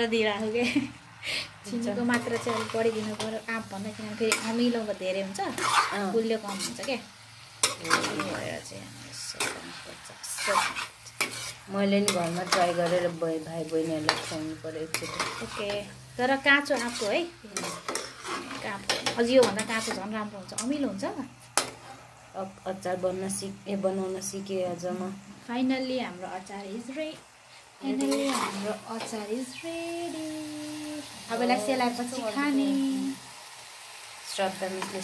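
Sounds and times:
oil sizzling: 0.0s - 35.0s
metal spatula scraping pan: 2.0s - 4.8s, 5.4s - 7.0s, 7.6s - 20.7s, 27.9s - 29.3s.

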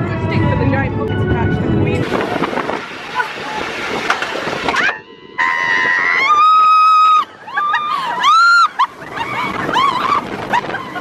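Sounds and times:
rollercoaster ride: 0.0s - 11.0s
wind rushing on microphone: 0.0s - 11.0s
rider screaming: 4.7s - 11.0s.

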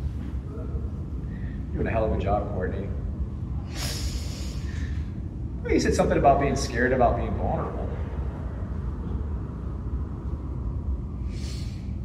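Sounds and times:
low rumble of room noise: 0.0s - 12.0s.

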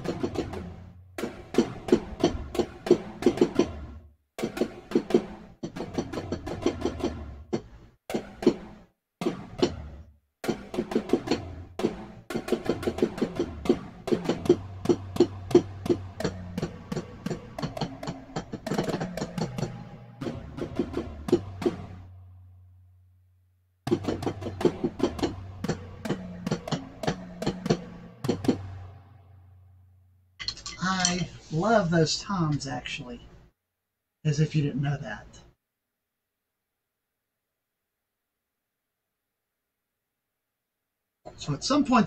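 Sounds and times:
drumsticks on electronic drum pad: 0.0s - 22.1s, 23.9s - 29.0s.

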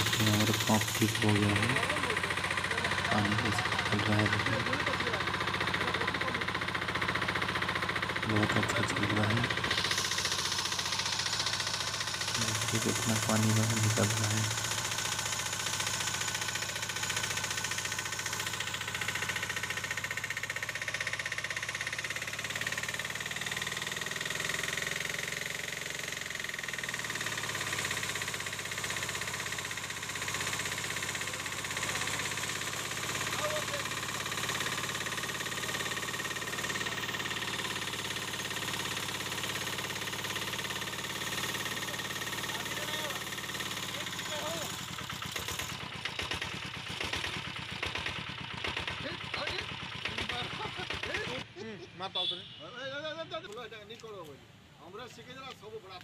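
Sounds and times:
engine-driven water pump running: 0.0s - 51.5s.

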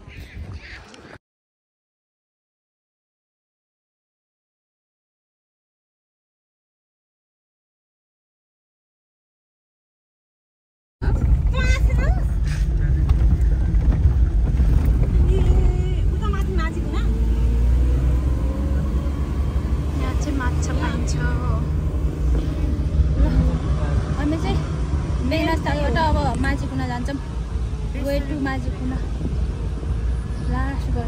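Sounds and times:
people talking: 11.0s - 17.3s, 19.9s - 29.3s, 30.4s - 31.0s
car cabin rumble: 11.0s - 31.0s.

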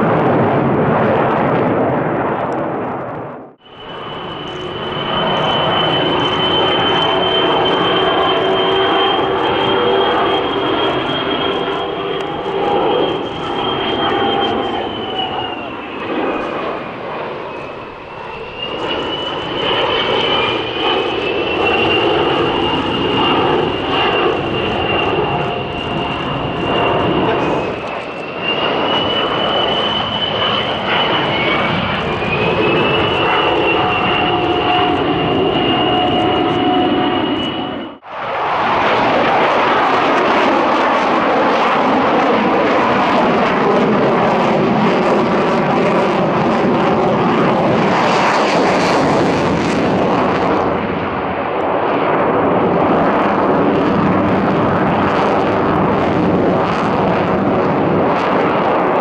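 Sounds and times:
fighter jet engine noise: 0.0s - 59.0s
jet aircraft whistling whine: 0.0s - 59.0s.

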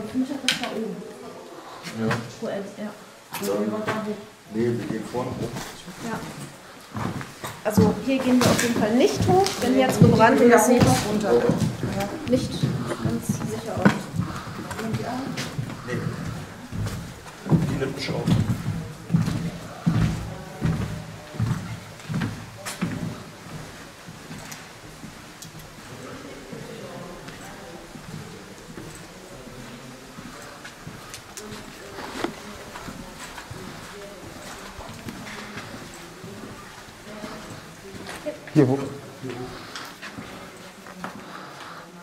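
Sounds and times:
low indistinct murmuring: 0.0s - 42.0s
feet shuffling: 3.4s - 42.0s
footsteps on hard floor: 3.7s - 41.4s.

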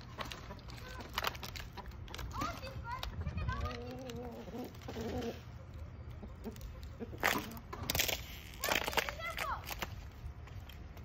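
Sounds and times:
chickens clucking: 0.0s - 7.9s.

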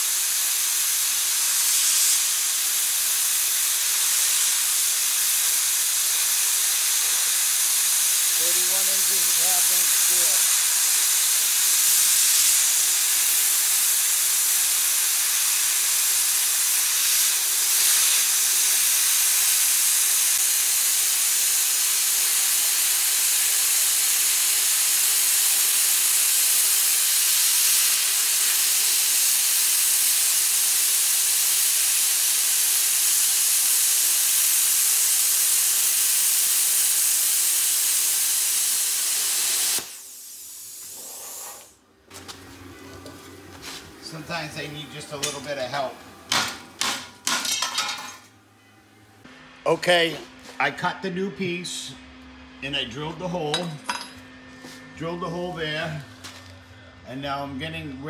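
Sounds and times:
plasma cutter hissing: 0.0s - 41.8s.

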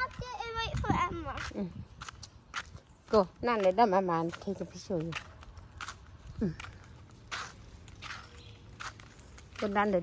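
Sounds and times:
footsteps on asphalt: 0.0s - 10.0s.

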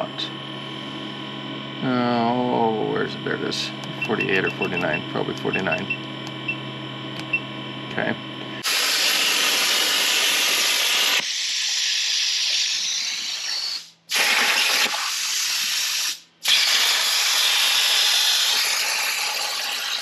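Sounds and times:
plasma arc hissing: 8.6s - 20.0s.

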